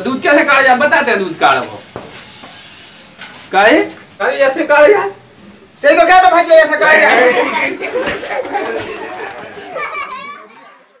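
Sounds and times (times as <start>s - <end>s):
people's voices: 4.8s - 11.0s.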